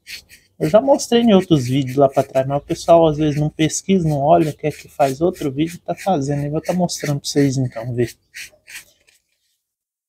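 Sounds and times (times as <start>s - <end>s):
toothbrush scrubbing rock: 0.0s - 9.6s.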